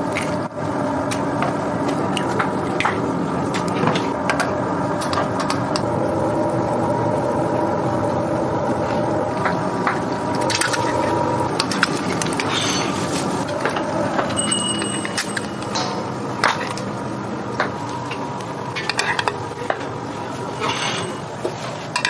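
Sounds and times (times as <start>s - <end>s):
low kitchen drone: 0.0s - 22.0s
eggs frying in oil: 0.1s - 14.4s
oil crackling and popping: 8.7s - 13.8s.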